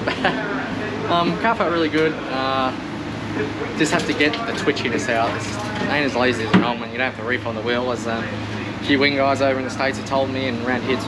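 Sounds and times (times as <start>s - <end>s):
low background hum: 0.0s - 11.0s
man talking: 0.0s - 11.0s.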